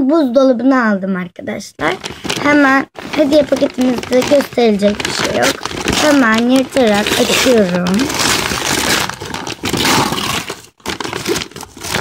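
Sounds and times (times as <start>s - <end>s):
paper tearing and crumpling: 1.8s - 12.0s.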